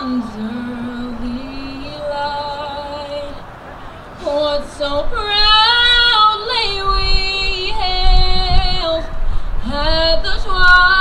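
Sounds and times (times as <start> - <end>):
woman singing into a microphone: 0.0 - 3.5, 4.1 - 11.0.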